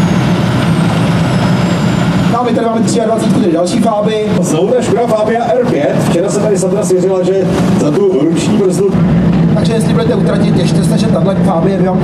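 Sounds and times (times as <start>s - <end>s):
rally car engine idling: 0.0s - 12.0s.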